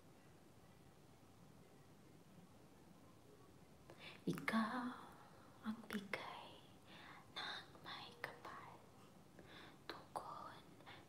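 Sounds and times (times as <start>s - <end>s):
faint whispered speech: 0.0s - 11.0s.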